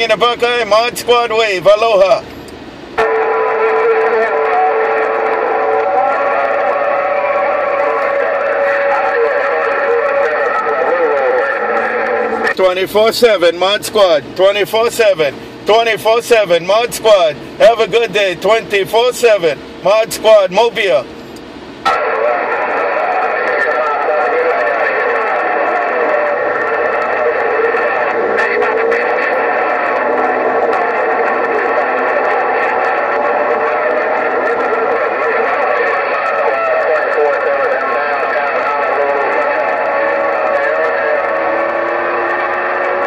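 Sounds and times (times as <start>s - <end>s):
radio static rushing: 0.0s - 43.0s.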